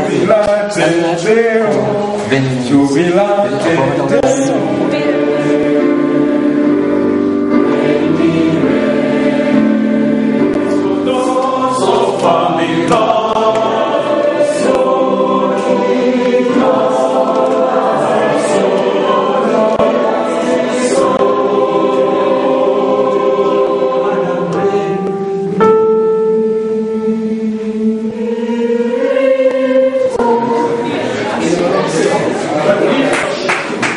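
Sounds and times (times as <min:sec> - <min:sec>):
choir singing sustained chords: 0:00.0 - 0:33.0.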